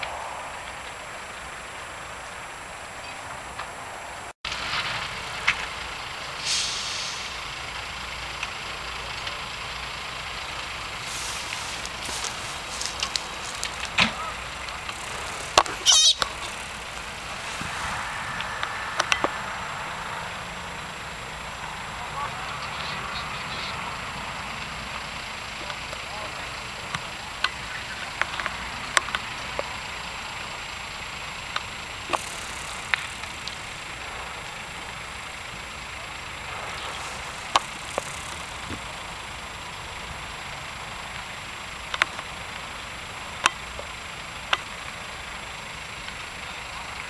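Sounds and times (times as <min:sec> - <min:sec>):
fire cracking and popping: 0:00.0 - 0:19.8, 0:23.9 - 0:46.4
fire rushing: 0:00.0 - 0:47.0
faint voices: 0:10.6 - 0:30.7, 0:46.1 - 0:47.0.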